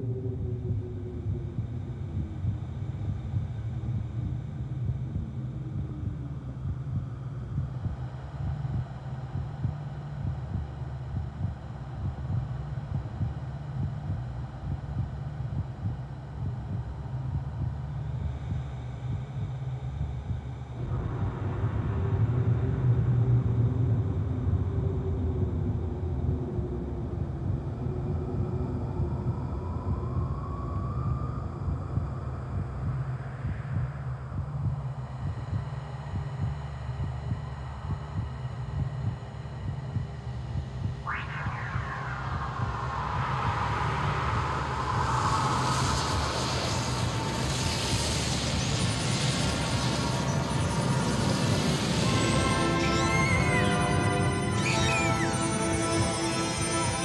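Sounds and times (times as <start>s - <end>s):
low steady rumble: 0.0s - 54.6s
faint rising tone: 41.0s - 57.0s.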